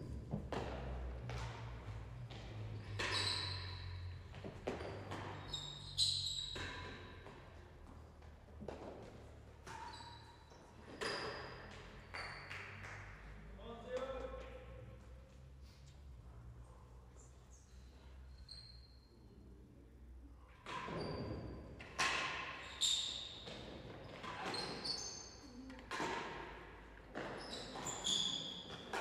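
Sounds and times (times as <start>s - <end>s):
tennis ball hitting racket and walls: 0.0s - 13.1s, 20.4s - 25.2s, 25.8s - 29.0s
high shoe squeaks: 2.7s - 7.2s, 9.6s - 12.8s, 18.1s - 19.4s, 20.7s - 21.6s, 22.6s - 25.7s, 27.2s - 29.0s.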